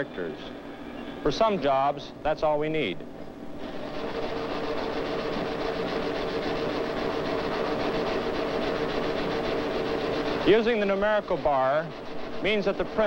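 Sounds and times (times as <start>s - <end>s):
faint hum: 0.0s - 13.0s
line printer clattering: 3.6s - 13.0s.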